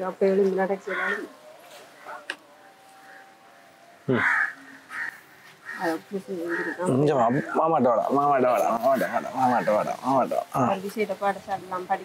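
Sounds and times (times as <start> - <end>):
crow cawing: 0.8 - 1.4, 2.0 - 10.3.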